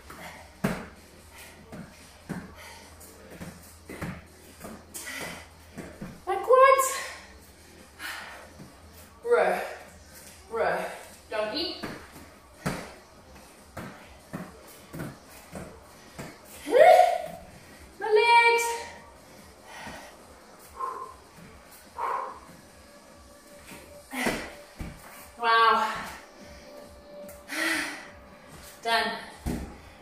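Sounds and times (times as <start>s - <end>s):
woman calling out: 18.0s - 18.9s.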